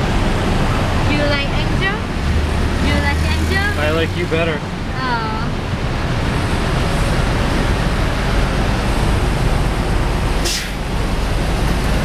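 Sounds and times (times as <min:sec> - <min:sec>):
road and traffic noise: 0:00.0 - 0:12.0
sharp hiss: 0:10.4 - 0:10.8.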